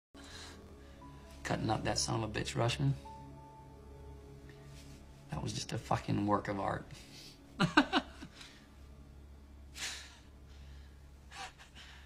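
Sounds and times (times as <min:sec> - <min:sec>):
low steady hum: 0:00.2 - 0:12.0.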